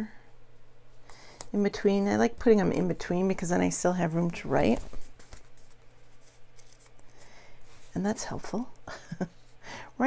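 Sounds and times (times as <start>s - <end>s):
paper sticker sheet rustling: 4.0s - 8.0s.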